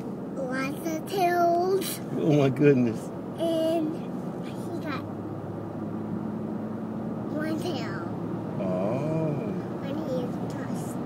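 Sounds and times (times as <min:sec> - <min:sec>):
road and engine noise inside car: 0:00.0 - 0:11.0.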